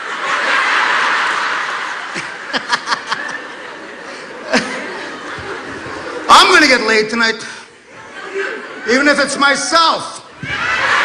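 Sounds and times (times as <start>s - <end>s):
audience laughing: 0.0s - 7.0s, 7.8s - 11.0s.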